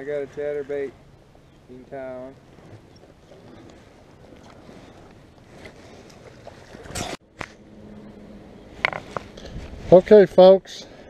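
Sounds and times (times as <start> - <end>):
wind and water hiss: 0.0 - 7.2.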